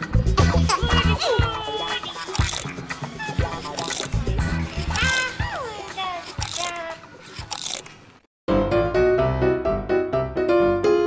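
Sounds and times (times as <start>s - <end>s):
bright children's music: 0.2s - 7.0s
doll crunching eating sound: 2.2s - 2.8s, 3.5s - 8.1s.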